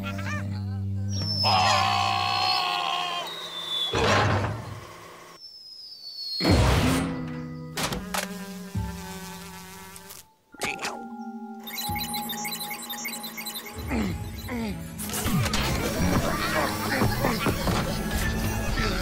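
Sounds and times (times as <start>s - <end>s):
wavering insect-like buzz: 7.7s - 10.4s, 11.6s - 19.0s
cartoon music: 10.6s - 19.0s.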